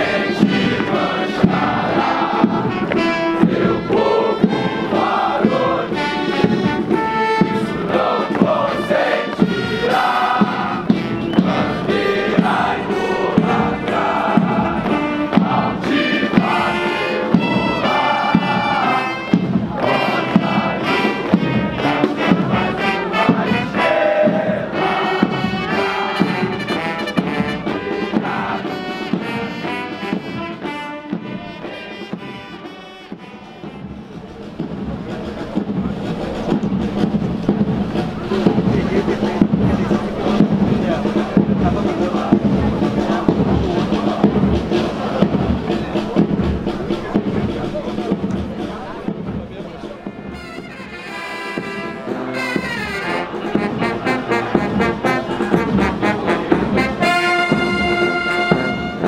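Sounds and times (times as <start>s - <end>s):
crowd murmur: 0.0s - 59.0s
military brass band march: 0.0s - 59.0s.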